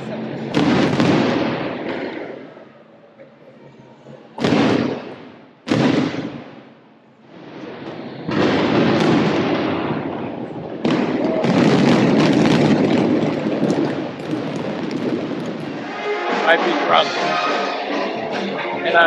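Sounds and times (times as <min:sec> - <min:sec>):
fireworks booming: 0:00.0 - 0:02.7, 0:04.4 - 0:17.0.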